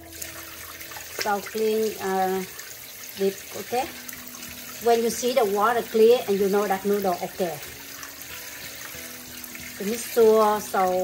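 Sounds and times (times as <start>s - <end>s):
tap water running into pot: 0.0s - 11.0s.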